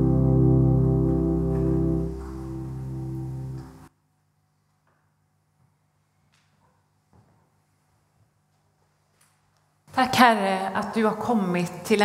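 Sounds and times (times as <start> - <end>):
piano chord: 0.0 - 3.9.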